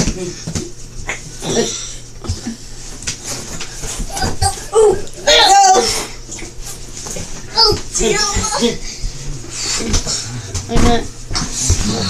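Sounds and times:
child crying out: 4.1 - 6.0.

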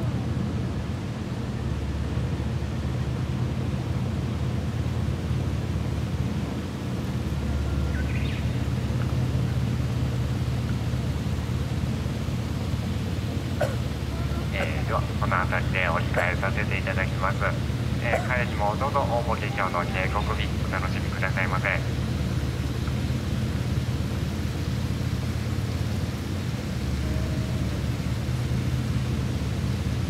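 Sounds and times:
boat engine drone: 0.0 - 30.0
person speaking: 14.1 - 22.0.

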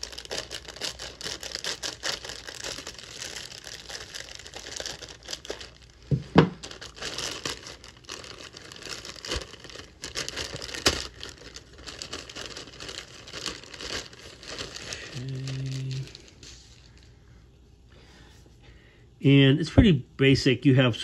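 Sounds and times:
plastic bag crinkling: 0.0 - 17.2.

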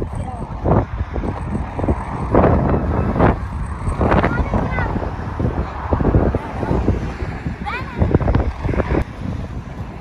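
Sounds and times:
wind rumbling on microphone: 0.0 - 10.0
children's voices and exclamations: 4.1 - 9.0.

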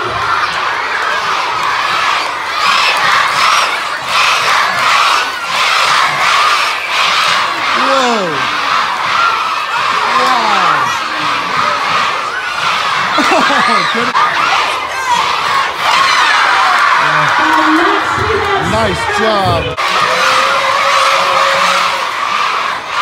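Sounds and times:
children cheering and shouting: 0.0 - 23.0.

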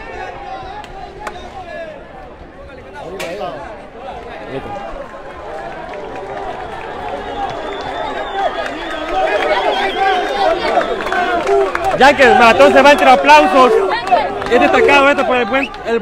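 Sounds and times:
crowd talking and calling out: 0.0 - 16.0.

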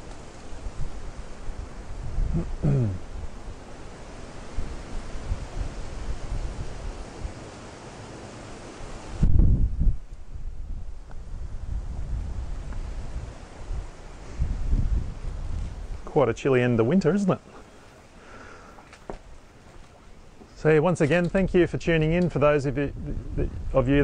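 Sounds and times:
wind buffeting microphone: 0.0 - 7.5, 8.8 - 17.9, 18.8 - 24.0.

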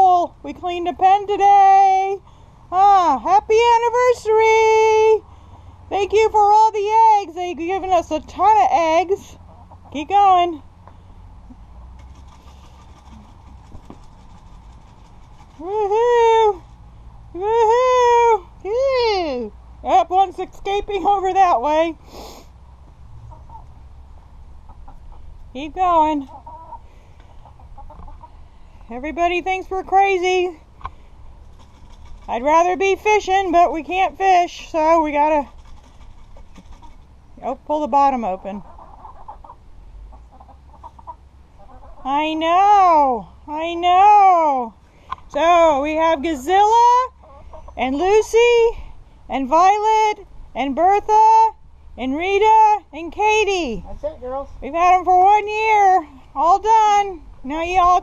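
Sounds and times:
low outdoor rumble: 0.0 - 58.0
hens clucking softly: 9.4 - 10.0, 12.0 - 15.7, 23.2 - 25.4, 26.2 - 28.9, 35.4 - 37.2, 38.3 - 42.3, 47.1 - 48.1.

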